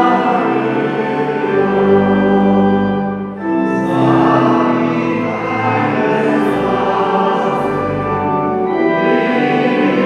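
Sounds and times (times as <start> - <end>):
congregation singing a hymn: 0.0 - 10.0
pipe organ: 0.0 - 10.0.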